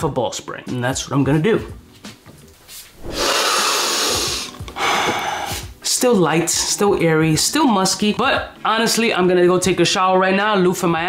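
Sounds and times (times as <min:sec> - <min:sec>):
hiss of rushing air: 0:03.0 - 0:05.6.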